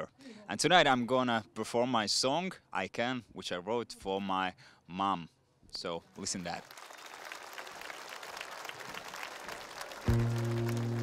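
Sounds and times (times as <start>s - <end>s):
audience applause: 6.4s - 11.0s
band playing held low chord: 10.1s - 11.0s.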